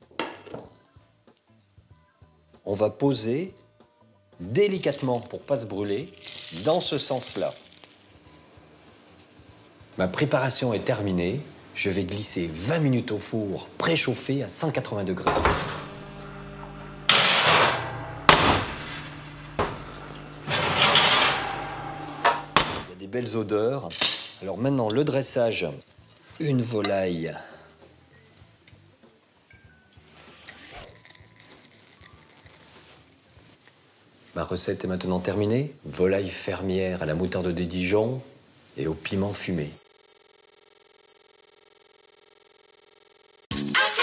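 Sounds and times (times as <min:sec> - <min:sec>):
faint background music: 0:00.0 - 0:15.6, 0:22.8 - 0:39.8
steady low hum: 0:15.4 - 0:22.9
sharp knock: 0:17.1 - 0:18.8, 0:22.2 - 0:22.9.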